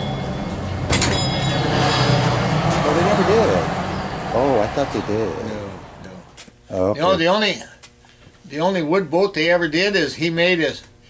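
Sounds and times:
motor vehicle passing: 0:00.0 - 0:06.4
faint voices: 0:02.8 - 0:07.0.

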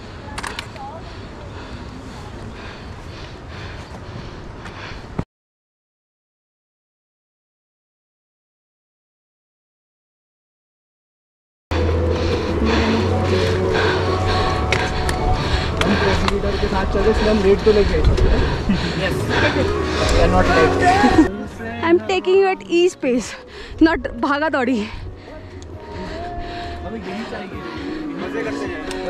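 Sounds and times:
heavy breathing: 0:00.0 - 0:05.2, 0:11.7 - 0:29.0
wind rumble on microphone: 0:11.7 - 0:20.4
voices talking: 0:12.4 - 0:29.0.

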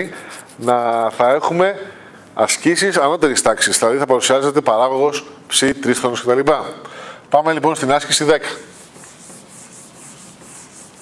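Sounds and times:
eraser wiping whiteboard: 0:00.0 - 0:01.1, 0:08.1 - 0:11.0.

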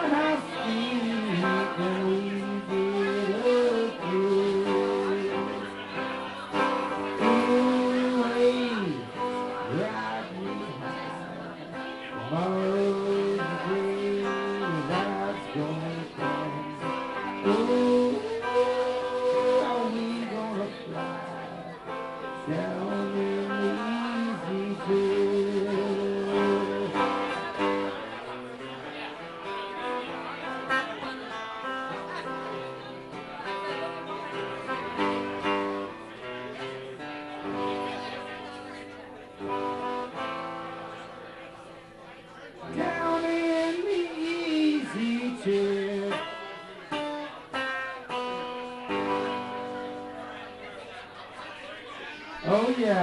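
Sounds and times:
man singing: 0:00.0 - 0:28.8, 0:42.6 - 0:48.2, 0:52.1 - 0:53.0
live guitar music: 0:00.0 - 0:53.0.

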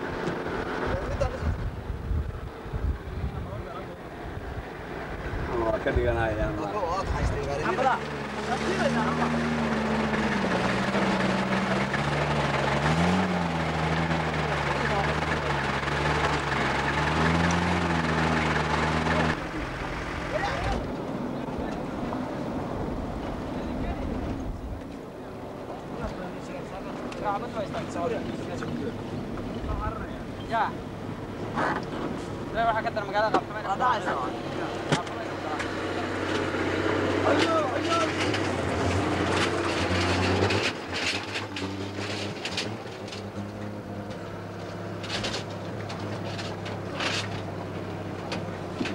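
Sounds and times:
pickup truck engine drone: 0:00.0 - 0:48.9.

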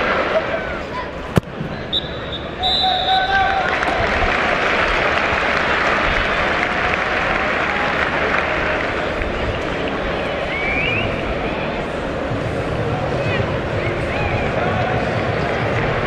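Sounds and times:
stadium crowd noise: 0:00.0 - 0:16.0
football kicked hard: 0:01.3 - 0:01.8
referee whistle: 0:01.6 - 0:03.5.

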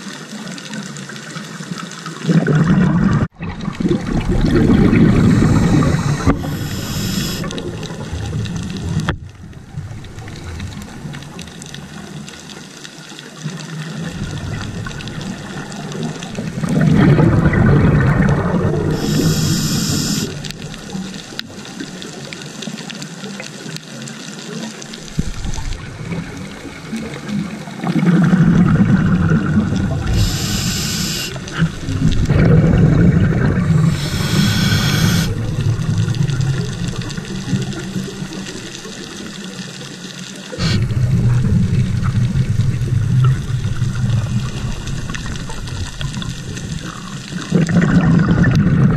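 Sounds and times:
bubbling exhaled air underwater: 0:02.2 - 0:12.6, 0:13.7 - 0:22.3, 0:25.0 - 0:39.8, 0:40.4 - 0:48.9
regulator inhale hiss: 0:05.0 - 0:07.6, 0:18.9 - 0:20.5, 0:29.9 - 0:31.6, 0:33.8 - 0:35.4, 0:40.6 - 0:41.1.

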